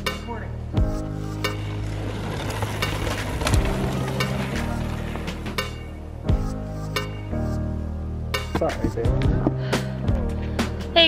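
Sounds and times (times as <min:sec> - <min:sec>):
background music low notes: 0:00.0 - 0:11.0
bike tyres skidding on dirt: 0:01.3 - 0:06.2.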